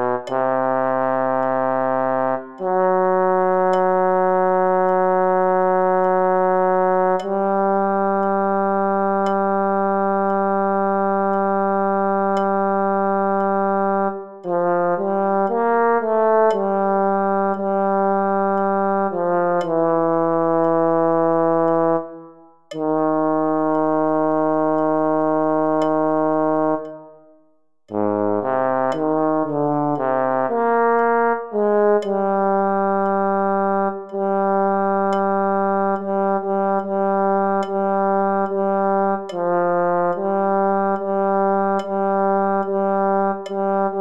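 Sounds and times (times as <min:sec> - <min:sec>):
low brassy synthesizer note: 0:00.0 - 0:44.0.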